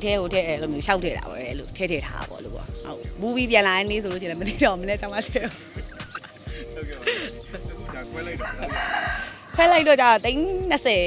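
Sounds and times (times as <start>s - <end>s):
rooster crowing: 8.4s - 9.6s.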